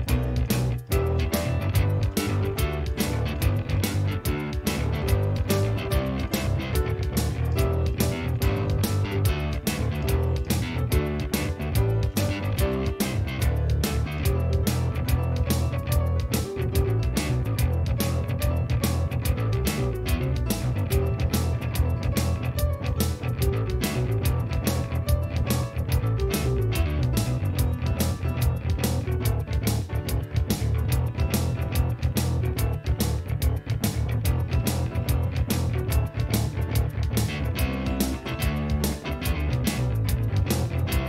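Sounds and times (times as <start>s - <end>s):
heavy synth bass line: 0.0s - 41.0s
keyboard melody: 0.0s - 41.0s.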